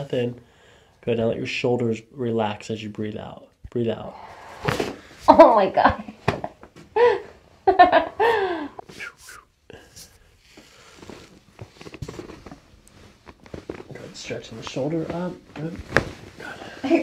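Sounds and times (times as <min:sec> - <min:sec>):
laughter: 0:05.3 - 0:08.8
soft rustling and shifting: 0:08.8 - 0:17.0.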